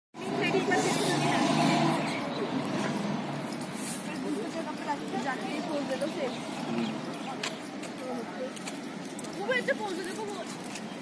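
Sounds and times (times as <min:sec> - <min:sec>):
people talking: 0:00.2 - 0:02.6, 0:04.0 - 0:10.9.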